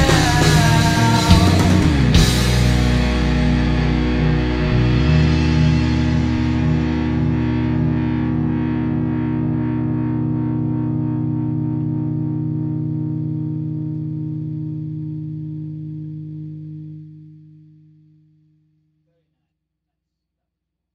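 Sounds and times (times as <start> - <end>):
distorted electric guitar chord: 0.0 - 18.8.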